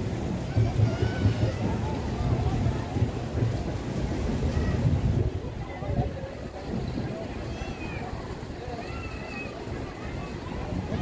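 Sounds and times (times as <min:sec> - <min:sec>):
faint crowd chatter: 0:00.0 - 0:11.0
wind buffeting microphone: 0:00.0 - 0:11.0.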